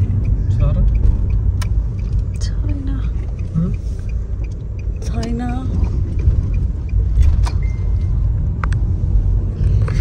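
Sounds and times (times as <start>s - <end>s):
car cabin road and engine rumble: 0.0s - 10.0s.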